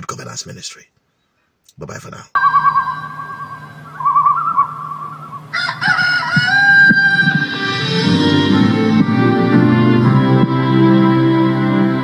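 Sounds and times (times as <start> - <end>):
rooster crowing: 2.9 - 8.2.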